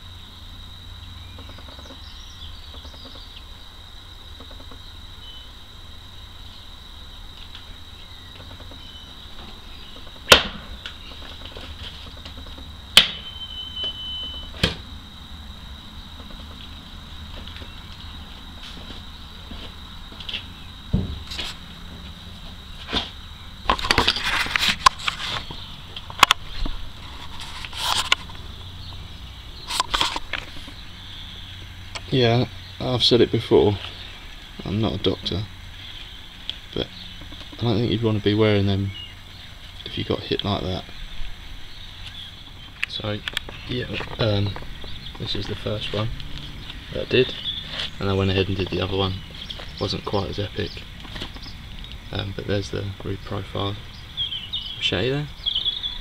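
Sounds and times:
knife chopping into wood: 10.3s - 10.6s.

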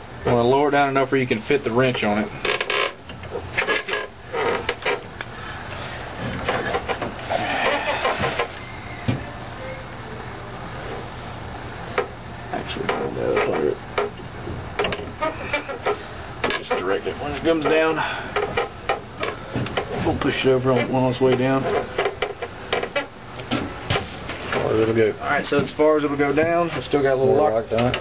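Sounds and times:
steady low hum: 0.0s - 28.0s
voices: 15.2s - 18.3s, 19.3s - 21.9s.

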